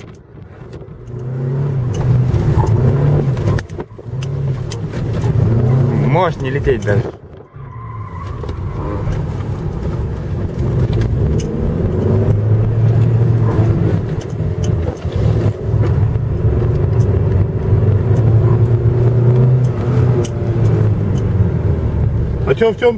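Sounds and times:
car engine revving: 0.0 - 22.9.

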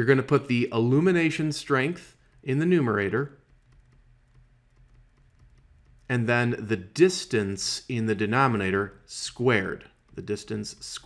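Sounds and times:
stylus ticking on a tablet: 0.8 - 11.0.

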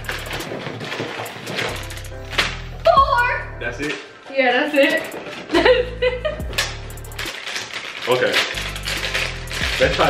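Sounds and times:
background music with bass: 0.0 - 0.8, 1.4 - 4.0, 4.8 - 7.3, 8.6 - 10.0.

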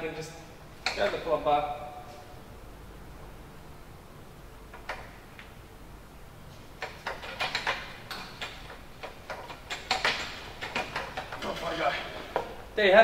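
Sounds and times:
metal frame clicking and knocking: 0.8 - 1.3, 6.8 - 12.6.

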